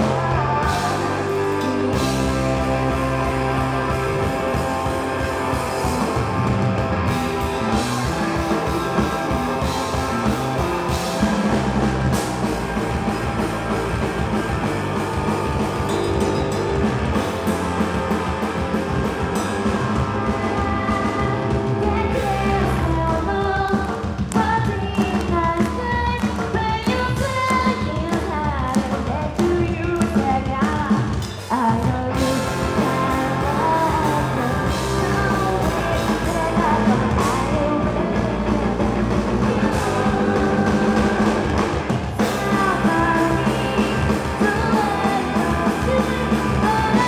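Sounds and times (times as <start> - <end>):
person singing: 0.0 - 10.9, 19.6 - 47.0
low bass line: 0.0 - 23.1, 32.2 - 47.0
drum kit: 0.0 - 47.0
electric guitar: 0.0 - 47.0
punk rock band playing: 0.0 - 47.0.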